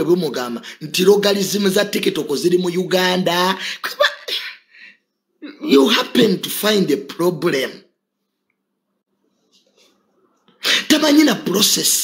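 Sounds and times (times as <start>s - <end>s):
man speaking: 0.0s - 4.7s, 5.4s - 7.9s, 10.6s - 12.0s.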